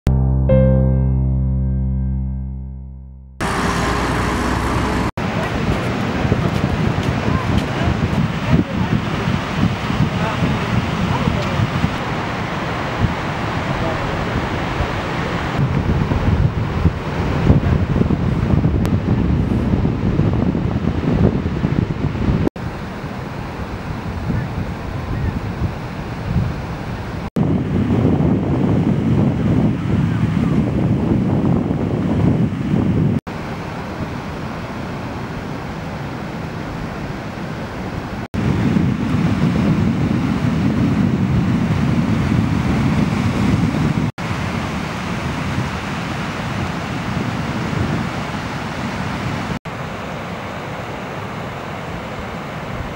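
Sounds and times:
surf washing: 3.4s - 52.9s
wind buffeting microphone: 3.4s - 52.9s.

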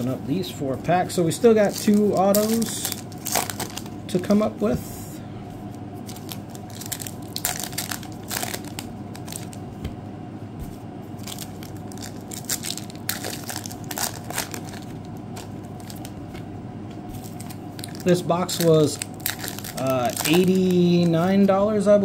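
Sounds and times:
foil wrappers crinkling and tearing: 1.5s - 4.0s, 6.0s - 9.6s, 11.2s - 16.4s, 17.1s - 21.6s.

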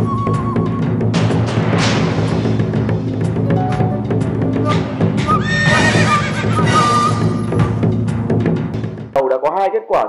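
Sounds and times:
background music: 0.0s - 9.2s
horse-like whinny: 5.3s - 7.4s.

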